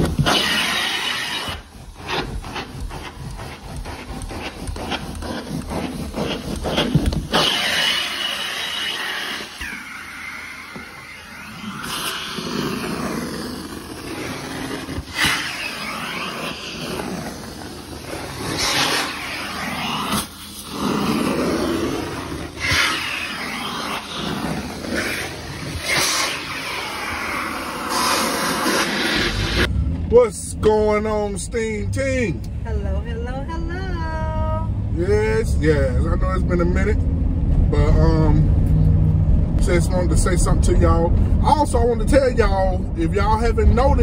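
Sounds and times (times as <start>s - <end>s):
carpet cleaning machine vacuum: 0.0s - 29.7s.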